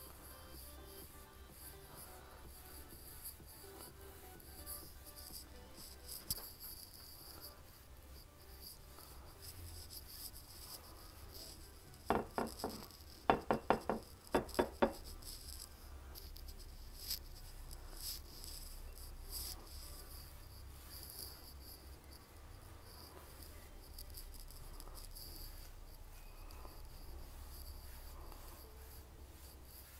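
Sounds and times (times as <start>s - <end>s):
paintbrush bristles scratching: 0.0s - 29.9s.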